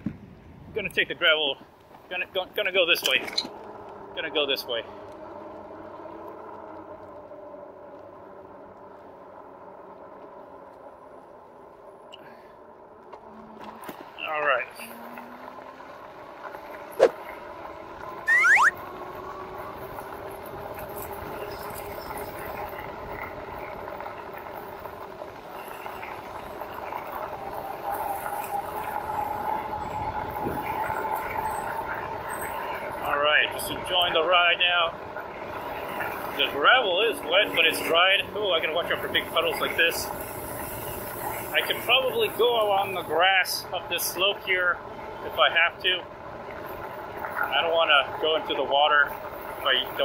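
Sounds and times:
electric bike motor whining: 0:03.1 - 0:33.0
tyre noise on dirt: 0:12.9 - 0:31.6.

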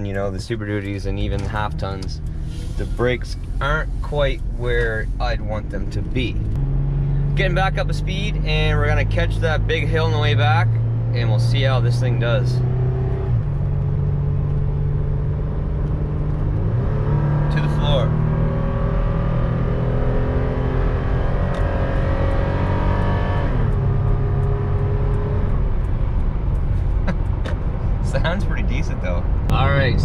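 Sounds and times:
road noise: 0:00.0 - 0:30.0
engine revving from cabin: 0:01.3 - 0:25.8.

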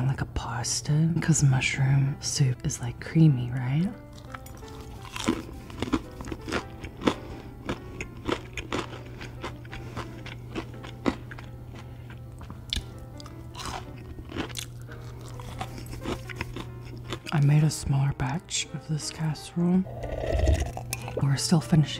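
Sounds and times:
person chewing crispy food: 0:04.0 - 0:17.5, 0:19.9 - 0:21.2.

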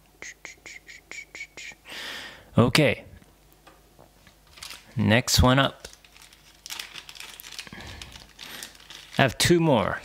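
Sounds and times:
plastic packaging crinkling: 0:04.3 - 0:10.0.

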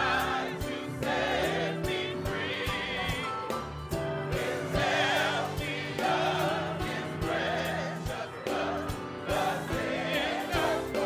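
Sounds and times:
choir singing a hymn: 0:00.0 - 0:11.0
piano accompaniment: 0:00.0 - 0:11.0.

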